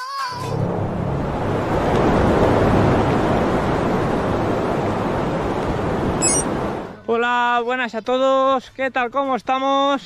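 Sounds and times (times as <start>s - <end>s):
rushing whoosh with low rumble: 0.5s - 6.9s.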